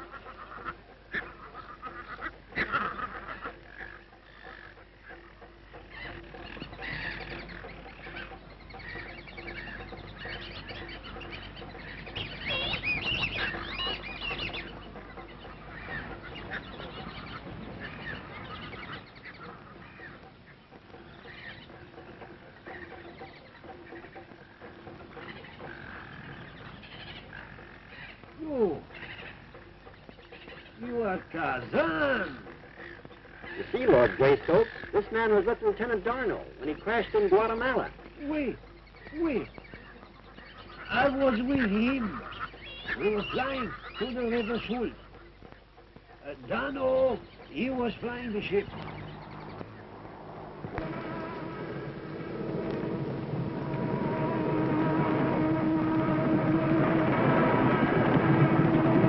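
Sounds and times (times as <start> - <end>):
animal and bird calls: 0.0 - 59.0.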